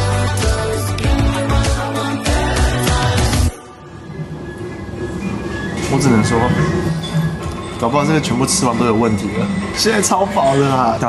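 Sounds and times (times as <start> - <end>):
train rumbling on tracks: 3.8 - 11.0.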